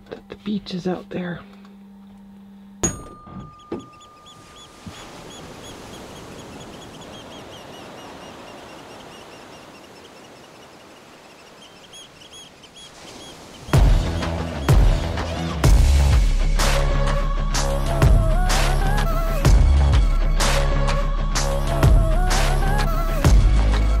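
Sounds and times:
outdoor ambient noise: 0:00.0 - 0:24.0
small birds chirping: 0:03.5 - 0:15.6
electronic music with heavy beat: 0:13.8 - 0:16.9.

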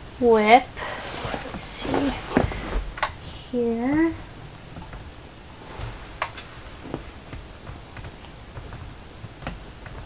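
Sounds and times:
rummaging rustling: 0:00.7 - 0:03.3
light clicks and taps: 0:06.2 - 0:10.0.

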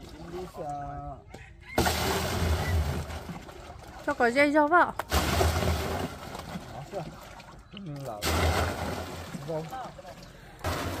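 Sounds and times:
water splashing into plastic drum: 0:01.6 - 0:11.0.

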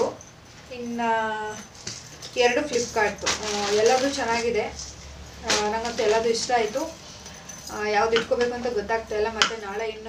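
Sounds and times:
woman speaking: 0:00.0 - 0:01.7, 0:02.3 - 0:07.0, 0:07.6 - 0:10.0.

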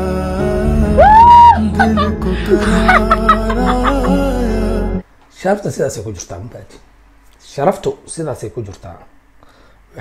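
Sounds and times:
chuckling laughter: 0:01.8 - 0:04.3.

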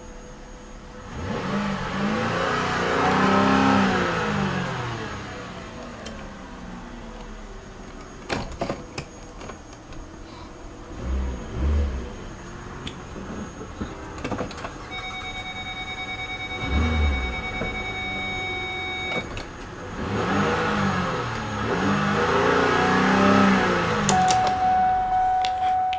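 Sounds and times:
car engine idling and revving: 0:00.0 - 0:25.9
steady electronic tone: 0:14.9 - 0:19.3, 0:24.1 - 0:25.9.

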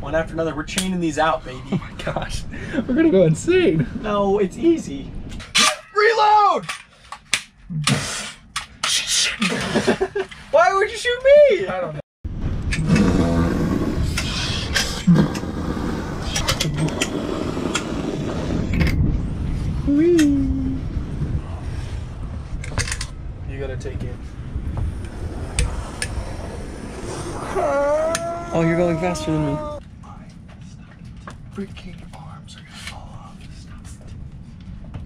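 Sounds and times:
steady rumbling noise: 0:00.0 - 0:05.8, 0:06.8 - 0:35.0.

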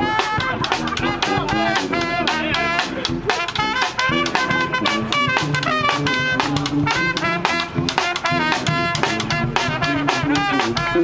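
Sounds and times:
brass band playing: 0:00.0 - 0:11.0
trumpet playing short notes: 0:00.0 - 0:11.0.

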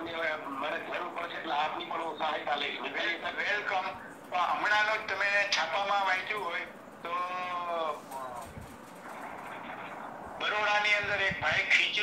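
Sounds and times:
man speaking: 0:00.0 - 0:08.5, 0:10.4 - 0:12.0.

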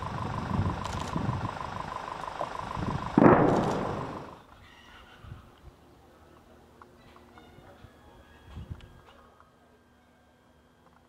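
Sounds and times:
low rumbling background: 0:00.0 - 0:04.6
distant explosion blast: 0:03.1 - 0:04.4.

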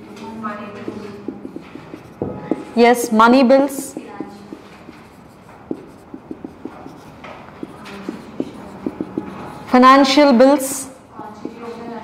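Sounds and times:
marker writing on whiteboard: 0:00.5 - 0:12.0.

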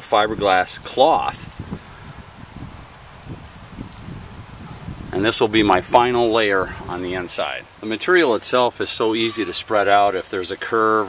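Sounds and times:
wind rumbling on microphone: 0:00.0 - 0:07.9
soft even hiss: 0:00.0 - 0:11.0.

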